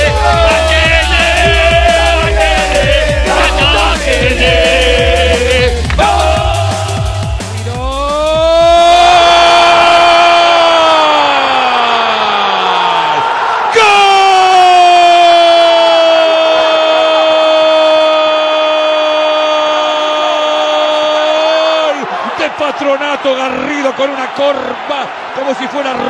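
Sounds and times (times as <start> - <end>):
commentator yelling goal: 0.0 - 9.8
stadium crowd noise: 0.0 - 26.0.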